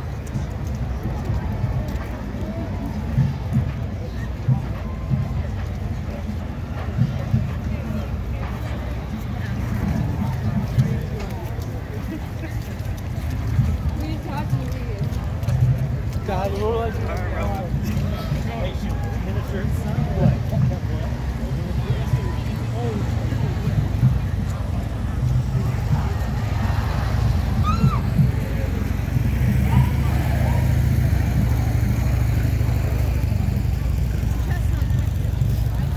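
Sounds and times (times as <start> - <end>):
bystanders talking: 0.0 - 35.9
crowd chattering: 0.0 - 35.9
police motorcycles rumbling: 0.0 - 35.9.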